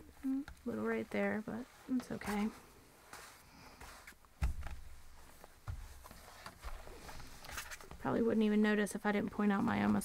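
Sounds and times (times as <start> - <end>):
fabric rustling: 0.0 - 10.0.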